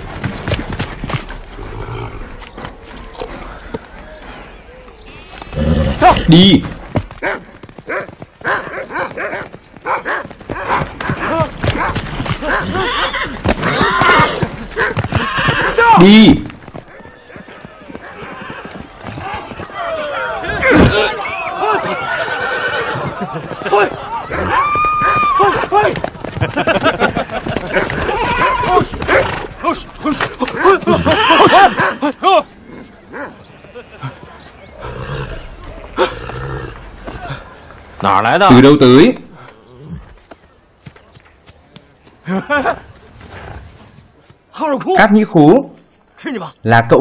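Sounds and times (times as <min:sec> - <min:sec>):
horse hoofbeats galloping: 0:00.0 - 0:38.1
horse neighing: 0:05.3 - 0:06.5, 0:12.4 - 0:16.2, 0:20.4 - 0:23.2, 0:30.1 - 0:31.9
dogs barking and yelping: 0:07.2 - 0:13.1
loud cry: 0:19.2 - 0:26.0, 0:30.4 - 0:32.4.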